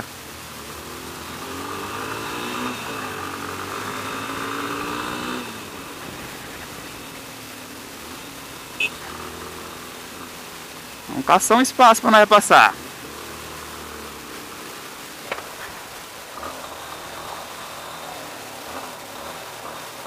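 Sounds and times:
motorcycle engine accelerating: 0.0s - 11.1s, 12.7s - 20.0s.

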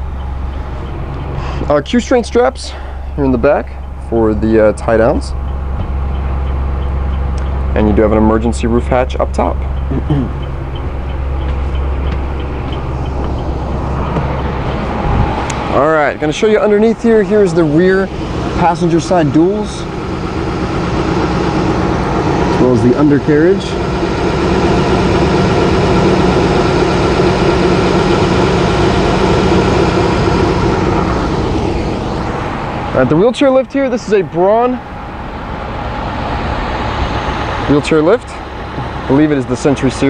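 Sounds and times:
faint regular ticking: 0.0s - 23.9s
diesel engine idling: 0.0s - 40.0s.

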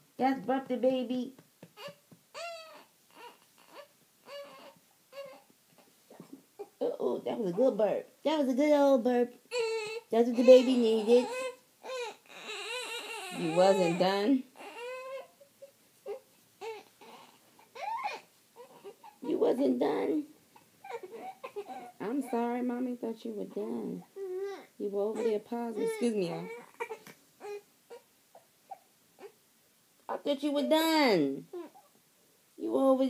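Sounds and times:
infant crying: 1.8s - 5.5s, 9.5s - 19.6s, 20.8s - 22.5s, 24.2s - 29.4s
baby whimpering cries: 1.8s - 5.9s, 9.5s - 19.6s, 20.8s - 22.6s, 24.2s - 29.4s, 31.5s - 32.0s.

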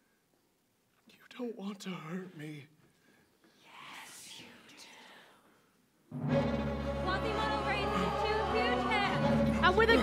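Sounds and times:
person whispering: 3.6s - 5.5s.

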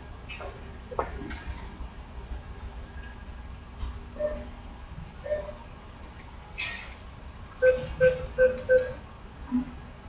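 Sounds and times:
keypad beeps: 7.6s - 9.0s.

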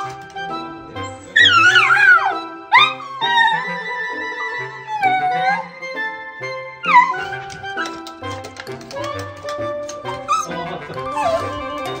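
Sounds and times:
background music: 0.0s - 12.0s
dog crying: 1.3s - 5.9s, 6.8s - 7.8s, 10.1s - 12.0s.

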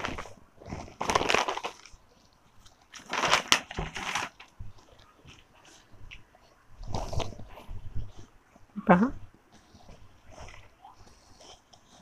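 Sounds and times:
packing sheet crinkling: 0.0s - 5.7s.

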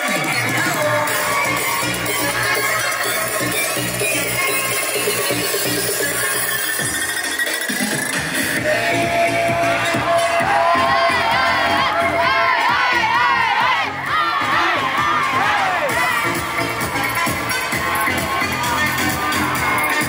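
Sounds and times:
bass-heavy dance music: 0.0s - 20.0s
crowd cheering and shouting: 0.0s - 20.0s.

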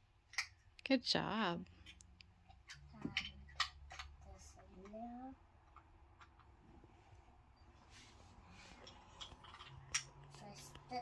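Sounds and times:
plastic toy pieces clicking: 2.6s - 5.0s.

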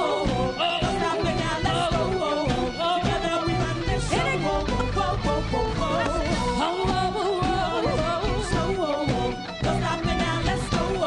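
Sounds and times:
congas: 0.0s - 11.0s
drum kit: 0.0s - 11.0s
keyboards: 0.0s - 11.0s
woman singing melismatic lead: 0.0s - 11.0s.

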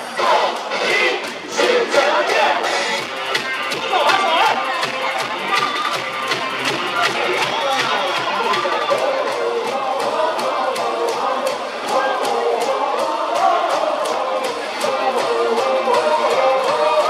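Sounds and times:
cheer music with steady beat: 0.0s - 17.0s
crowd singing and chanting: 0.0s - 17.0s.

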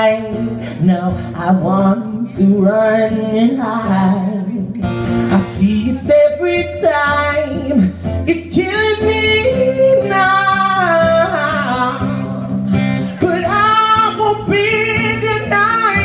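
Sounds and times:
guitar accompaniment: 0.0s - 16.0s
person singing wordless notes: 0.0s - 16.0s.

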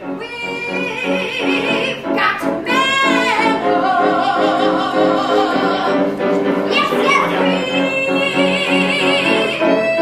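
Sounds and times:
group of young voices singing: 1.2s - 9.8s.

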